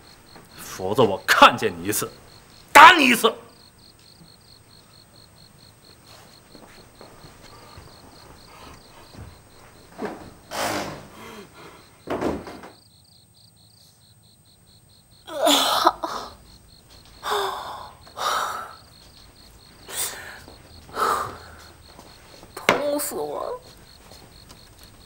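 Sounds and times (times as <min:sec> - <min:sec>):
crickets chirping: 0:00.0 - 0:25.0
person groaning: 0:15.3 - 0:16.4
woman moaning and sobbing: 0:15.3 - 0:16.4, 0:17.2 - 0:18.8.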